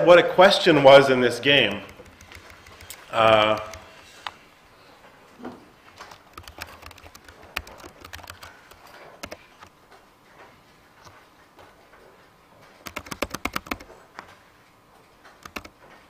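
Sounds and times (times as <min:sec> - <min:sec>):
computer keyboard keystrokes: 0:01.7 - 0:04.4, 0:06.0 - 0:09.7, 0:12.8 - 0:14.3, 0:15.3 - 0:16.0.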